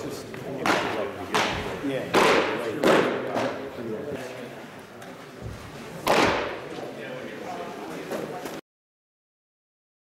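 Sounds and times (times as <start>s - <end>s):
baseball smacking into mitt: 6.0s - 6.6s.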